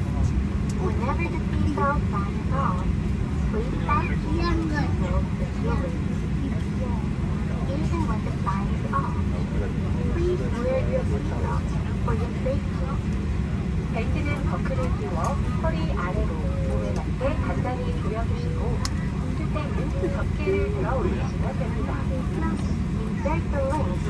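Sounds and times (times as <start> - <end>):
faint voices of people talking: 0.0 - 24.0
jet airliner cabin rumble: 0.0 - 24.0.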